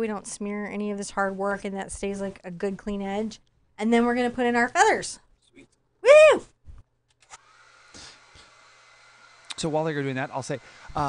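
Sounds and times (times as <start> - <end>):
hair dryer blowing: 7.2 - 11.0.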